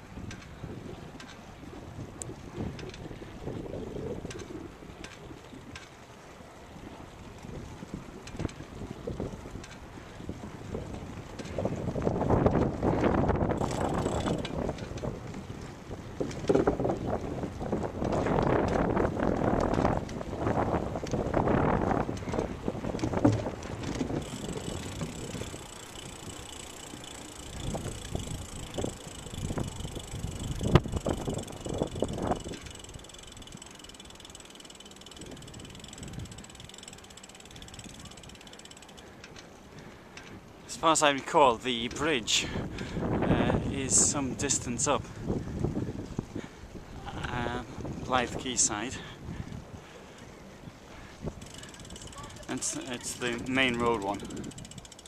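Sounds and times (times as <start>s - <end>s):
bicycle ticking and rattling: 0.0s - 55.0s
wind buffeting microphone: 0.0s - 55.0s.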